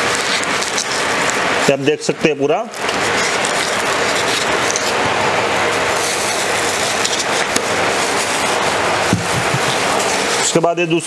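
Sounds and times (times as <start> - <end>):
machinery rushing noise: 0.0 - 11.0.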